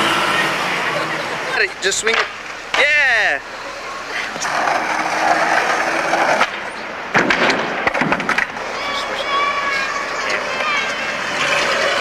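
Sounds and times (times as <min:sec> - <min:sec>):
skateboard wheels rolling on asphalt: 0:00.1 - 0:12.0.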